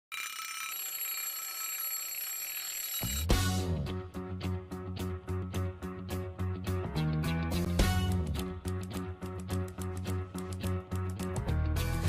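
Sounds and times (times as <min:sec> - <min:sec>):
alarm clock bell ringing: 0:00.1 - 0:03.6.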